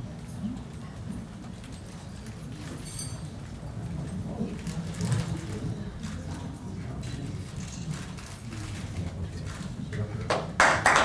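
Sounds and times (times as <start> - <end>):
murmur of voices: 0.0 - 11.0
metal chain clinking: 2.8 - 3.3.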